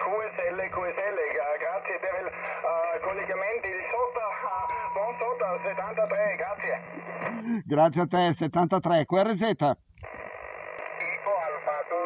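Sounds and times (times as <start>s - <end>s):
voice over radio speaker: 0.0s - 7.4s, 10.8s - 12.0s
steady hum: 0.0s - 7.7s.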